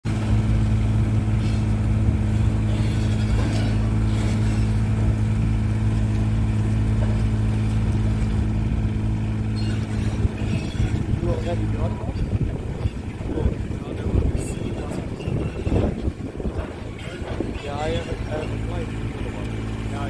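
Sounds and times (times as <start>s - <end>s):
lift engine humming steadily: 0.0s - 20.0s.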